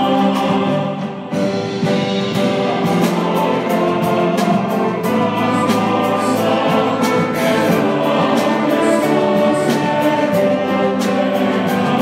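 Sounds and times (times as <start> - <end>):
choir singing: 0.0 - 12.0
orchestra playing: 0.0 - 12.0
violins: 0.0 - 12.0
accordion: 1.6 - 12.0.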